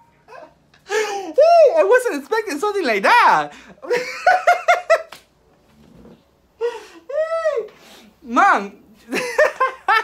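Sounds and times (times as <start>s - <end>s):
man laughing: 3.5s - 5.2s, 9.0s - 10.0s.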